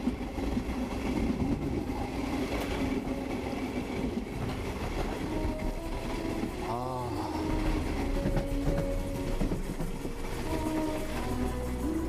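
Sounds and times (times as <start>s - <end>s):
train wheels rumbling on track: 0.0s - 12.0s.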